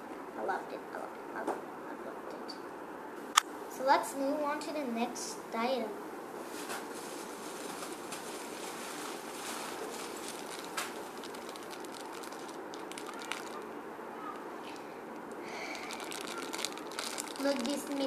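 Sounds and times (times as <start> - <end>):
plastic packaging crinkling: 6.5 - 18.0.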